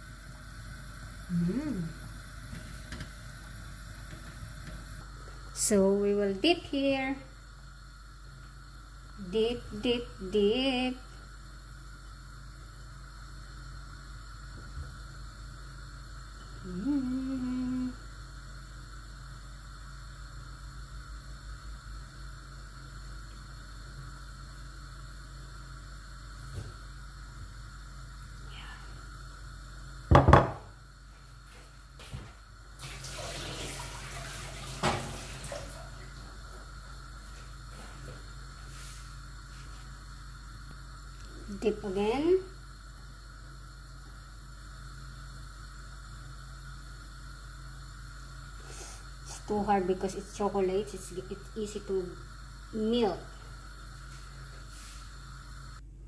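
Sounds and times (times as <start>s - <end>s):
faint hum: 0.0s - 56.0s
gas burner hissing: 0.0s - 56.0s
water running and splashing: 32.8s - 36.2s.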